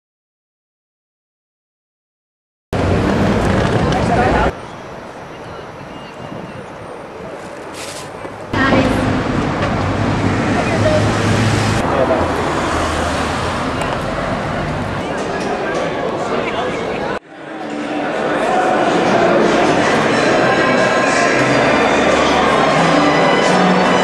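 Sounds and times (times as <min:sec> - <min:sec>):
road traffic: 0:02.8 - 0:17.2
people's voices: 0:02.8 - 0:24.0.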